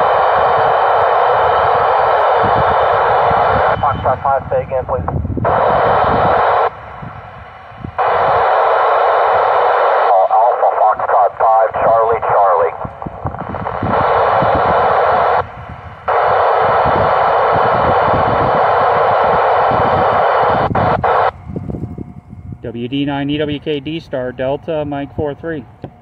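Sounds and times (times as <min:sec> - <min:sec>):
radio static hiss bursts: 0:00.0 - 0:06.8, 0:07.9 - 0:21.4
garbled voice over radio: 0:02.2 - 0:06.7, 0:09.7 - 0:15.4.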